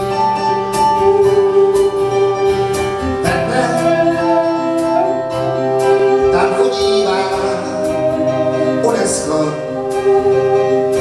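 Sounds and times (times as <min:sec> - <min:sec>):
held keyboard chords: 0:00.0 - 0:11.0
person singing: 0:03.2 - 0:11.0.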